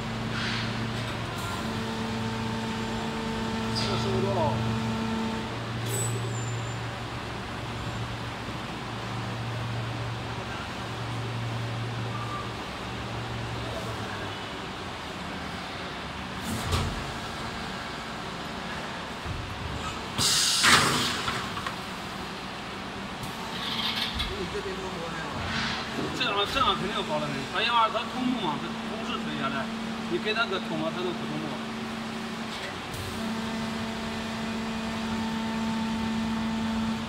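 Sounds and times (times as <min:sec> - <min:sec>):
injection moulding machine hum: 0:00.0 - 0:20.6, 0:21.2 - 0:37.0
loud burst of hiss: 0:20.2 - 0:21.4.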